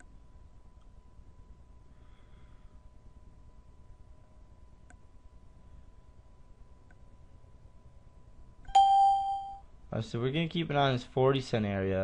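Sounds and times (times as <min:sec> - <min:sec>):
electronic alert chime: 0:08.7 - 0:09.6.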